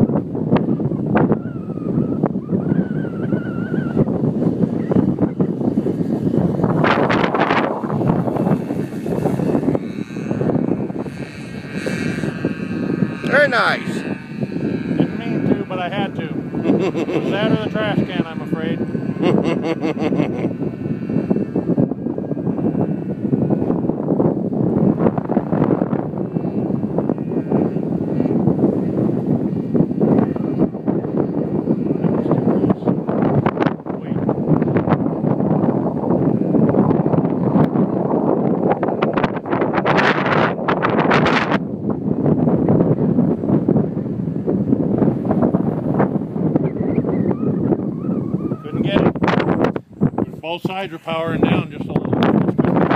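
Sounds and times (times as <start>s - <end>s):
strong wind buffeting microphone: 0.0s - 52.9s.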